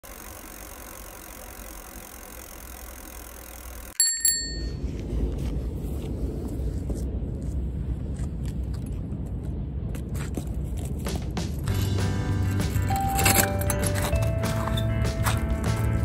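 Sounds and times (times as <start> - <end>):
bicycle bell ringing: 3.8 - 4.8, 12.8 - 15.4
low rumbling noise: 4.5 - 16.0.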